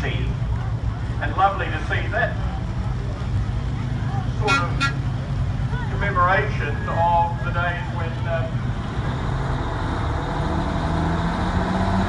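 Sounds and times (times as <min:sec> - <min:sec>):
truck engine running: 0:00.0 - 0:12.0
truck horn toots: 0:04.4 - 0:05.1.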